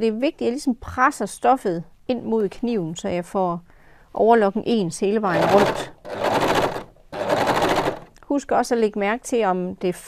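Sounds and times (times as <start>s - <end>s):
overlocker running: 5.3s - 8.1s.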